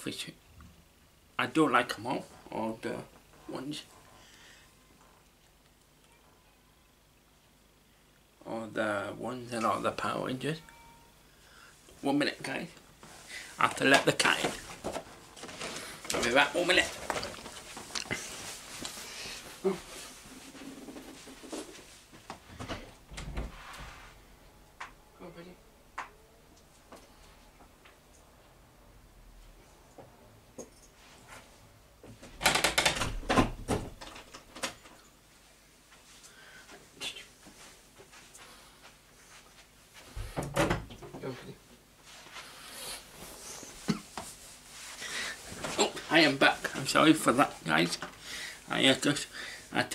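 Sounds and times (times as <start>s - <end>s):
rustling near microphone: 13.0s - 24.4s
heavy door thump: 23.1s - 23.6s.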